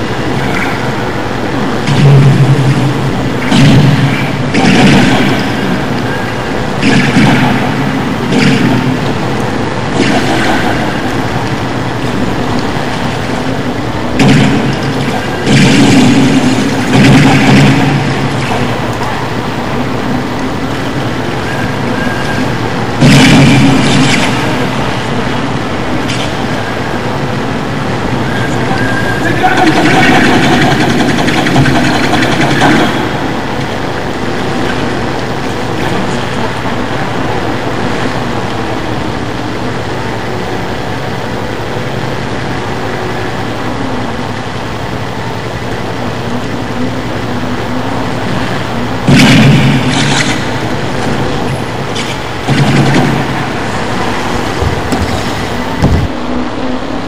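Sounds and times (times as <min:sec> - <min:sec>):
distorted noise music: 0:00.0 - 0:57.0.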